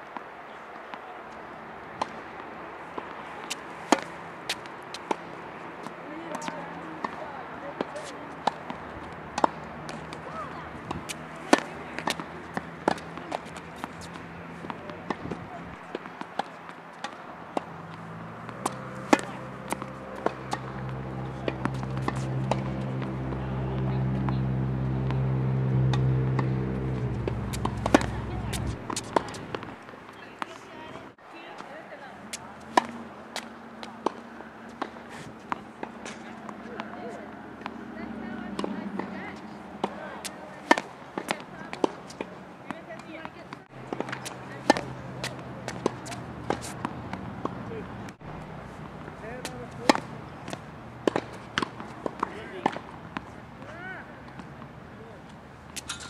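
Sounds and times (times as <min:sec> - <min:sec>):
tennis balls bouncing on hard court: 0:00.1 - 0:56.0
tennis balls struck by rackets: 0:00.1 - 0:56.0
low motor drone: 0:18.7 - 0:29.7.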